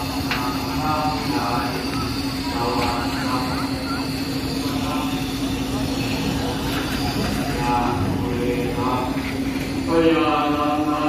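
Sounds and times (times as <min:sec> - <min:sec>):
rumbling background noise: 0:00.0 - 0:11.0
steady low hum: 0:00.0 - 0:11.0
voices: 0:00.0 - 0:11.0.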